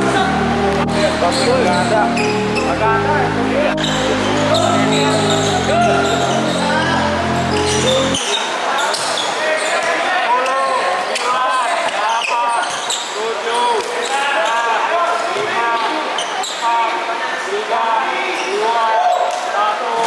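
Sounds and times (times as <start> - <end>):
background music: 0.0 - 8.3
sneakers squeaking on court: 3.8 - 6.7, 7.4 - 10.8, 12.1 - 13.2.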